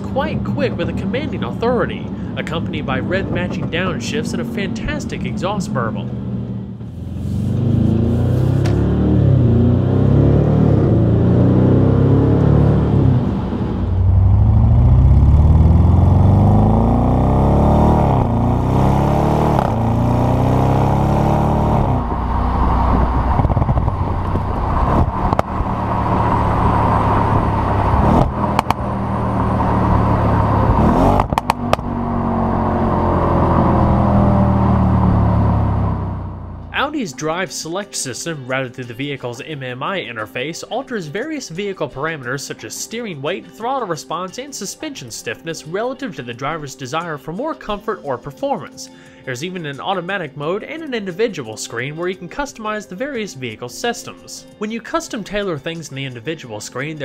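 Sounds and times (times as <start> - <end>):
car exhaust accelerating: 0.0 - 36.9
exhaust cracks: 2.4 - 36.9.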